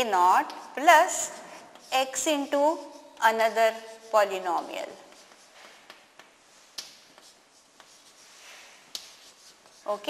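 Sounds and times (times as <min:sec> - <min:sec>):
chalk scratching on chalkboard: 0:00.0 - 0:10.0
chalk tapping: 0:00.0 - 0:10.0.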